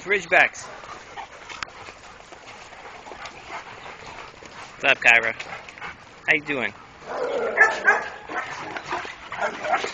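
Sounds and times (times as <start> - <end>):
man talking: 0.0 - 0.7, 4.8 - 5.4, 6.2 - 6.8
dogs moving about: 0.0 - 9.9.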